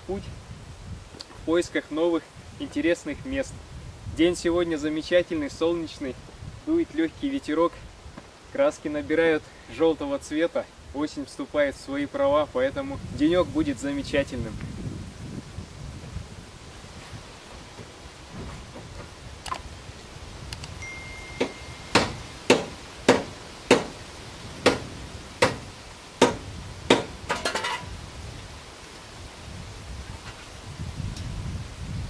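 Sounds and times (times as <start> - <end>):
tool knocking on metal: 21.4 - 23.9.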